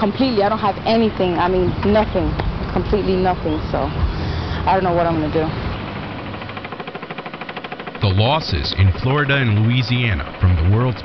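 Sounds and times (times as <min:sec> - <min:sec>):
machine rattling: 0:04.7 - 0:08.1.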